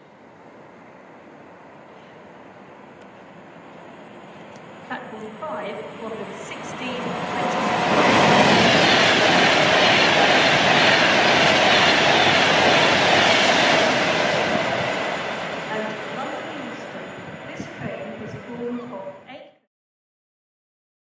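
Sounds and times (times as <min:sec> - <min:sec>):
electric train passing at speed: 0:00.0 - 0:19.3.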